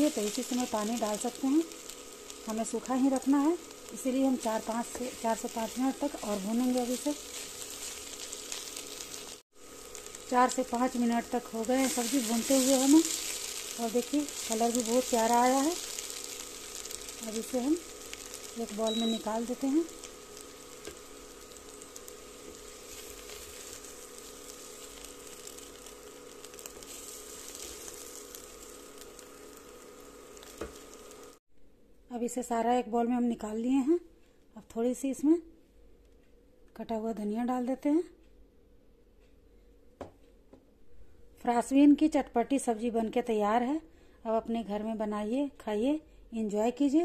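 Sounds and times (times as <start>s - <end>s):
beans sizzling in a wok: 0.0s - 31.4s
cooktop humming: 0.0s - 31.4s
wooden spatula scraping: 3.9s - 29.2s.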